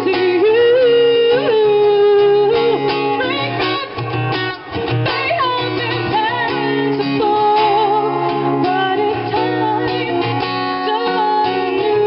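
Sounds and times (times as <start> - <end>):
acoustic guitar: 0.0 - 12.0
woman singing through pa: 0.0 - 12.0.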